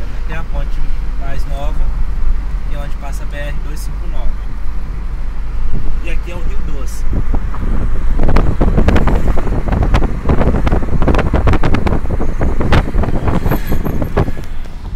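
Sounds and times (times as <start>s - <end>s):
car engine and road rumble: 0.0s - 14.9s
wind buffeting microphone: 7.0s - 14.9s.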